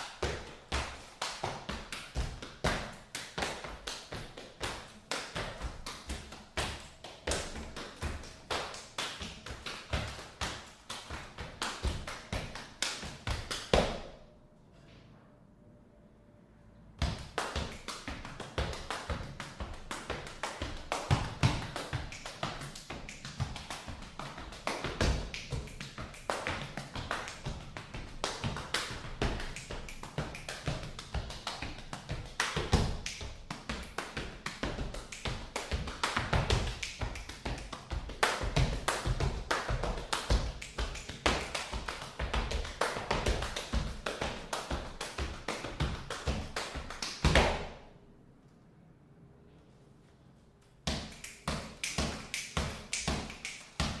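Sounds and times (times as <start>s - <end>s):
body percussion taps and slaps: 0.0s - 14.2s, 17.0s - 47.8s, 50.8s - 54.0s.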